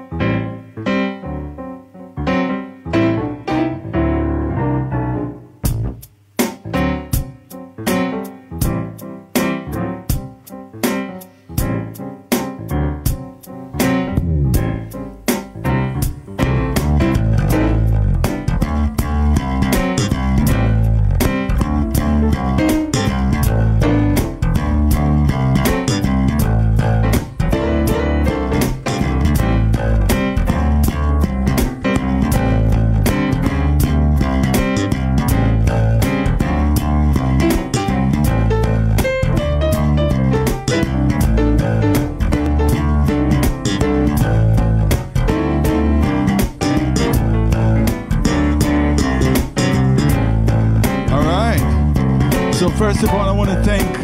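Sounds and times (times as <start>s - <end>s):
electric bass guitar: 0.0s - 54.0s
stage piano chords: 0.0s - 54.0s.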